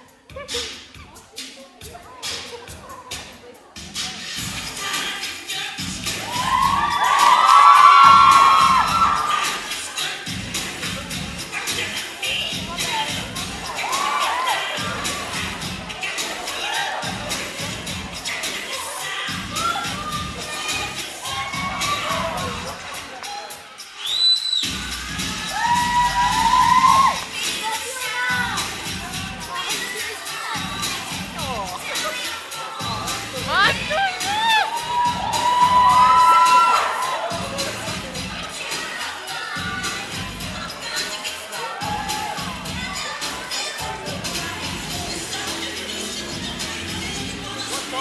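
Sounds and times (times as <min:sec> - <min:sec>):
dance music: 0:00.0 - 0:48.0
children screaming and cheering: 0:06.0 - 0:10.0, 0:12.7 - 0:23.0, 0:24.0 - 0:44.9
shrill whistle: 0:23.9 - 0:25.0.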